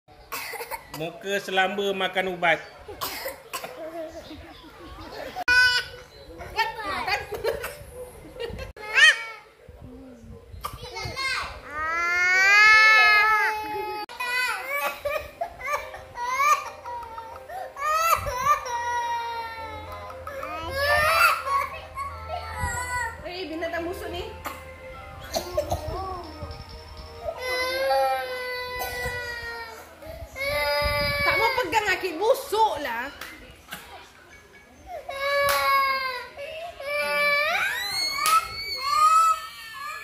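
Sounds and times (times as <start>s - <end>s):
toddler crying: 11.7s - 23.2s, 27.2s - 31.9s, 34.9s - 40.0s.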